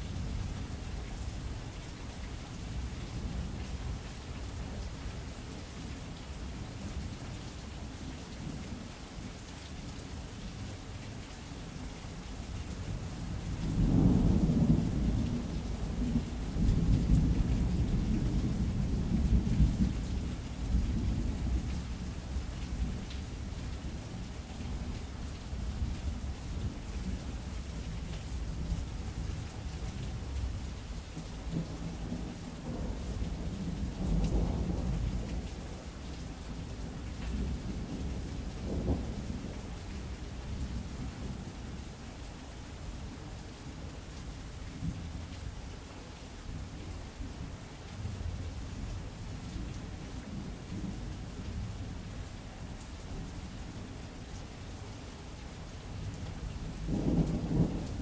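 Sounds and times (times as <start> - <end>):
steady rain: 0.0 - 58.0
thunder rumbling: 56.8 - 58.0.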